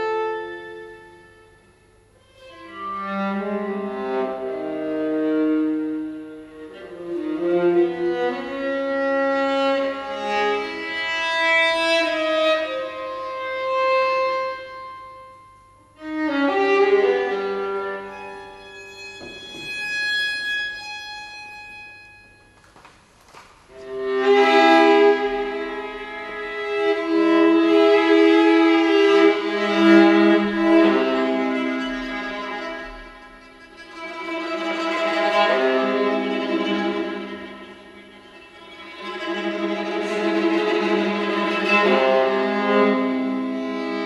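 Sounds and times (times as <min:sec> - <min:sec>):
bowed viola: 0:00.0 - 0:22.9, 0:23.7 - 0:44.0.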